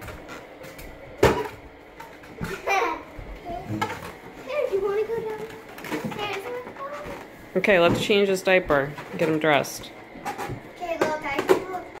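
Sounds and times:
young child's voice: 2.6s - 3.8s, 4.4s - 7.2s, 10.8s - 12.0s.

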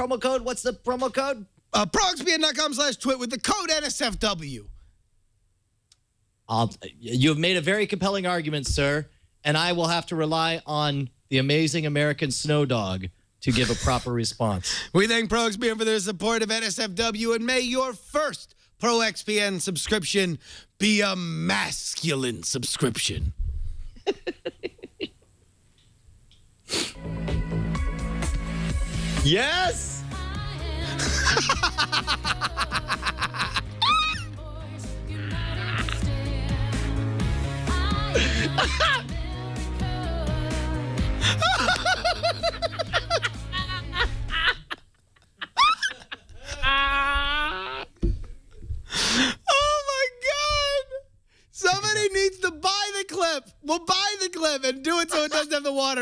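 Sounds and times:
man laughing: 13.5s - 14.1s, 24.0s - 25.2s, 30.9s - 34.3s, 35.2s - 36.0s, 38.1s - 39.1s, 41.2s - 48.0s, 54.9s - 55.9s
loud breathy hissing burst: 26.7s - 27.0s.

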